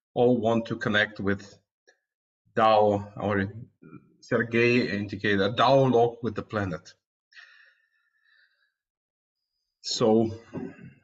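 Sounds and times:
man breathing: 0:07.4 - 0:08.9.

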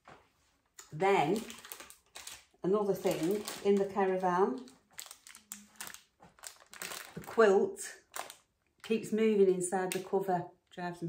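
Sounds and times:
plastic packaging rustling: 0:00.9 - 0:08.5.

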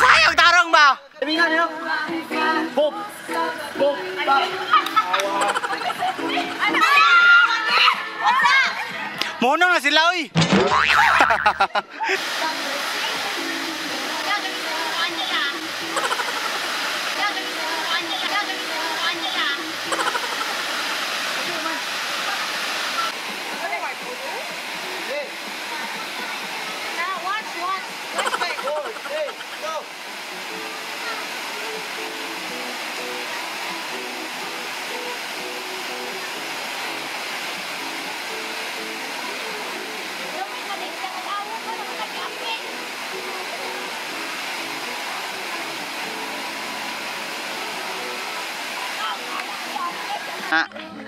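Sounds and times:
waterfall rushing: 0:00.0 - 0:00.8, 0:01.6 - 0:08.8, 0:10.9 - 0:50.6
women's voices: 0:03.3 - 0:09.1, 0:12.0 - 0:16.1, 0:17.2 - 0:20.2, 0:40.2 - 0:42.8
faint song: 0:12.3 - 0:20.0, 0:30.1 - 0:51.0.

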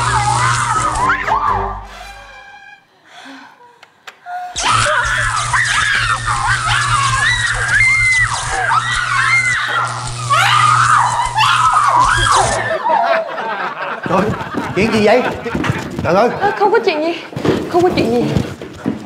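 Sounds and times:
electric buzz: 0:00.0 - 0:02.6, 0:04.6 - 0:12.8
woman shrieking and wailing: 0:00.0 - 0:02.9, 0:04.3 - 0:12.9.

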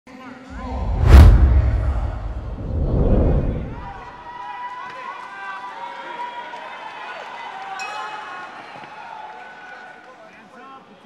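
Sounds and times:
deep whooshing rumble: 0:00.5 - 0:04.1.

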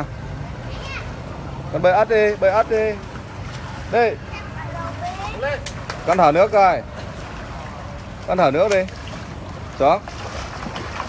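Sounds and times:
water lapping at pool edge: 0:01.1 - 0:11.0.

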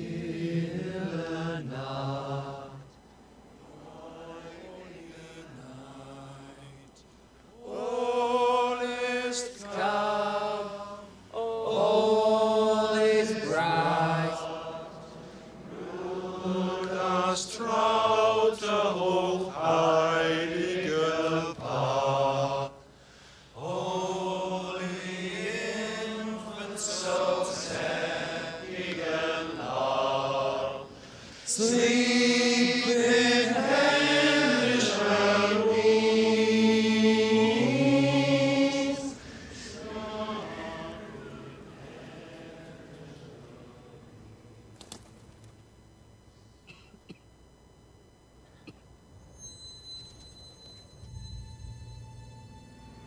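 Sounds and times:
men singing chant-like song: 0:07.6 - 0:22.8, 0:23.6 - 0:43.9.

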